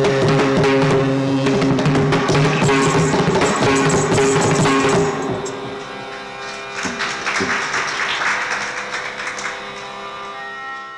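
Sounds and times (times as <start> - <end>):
hand drum strokes: 1.4 - 7.0.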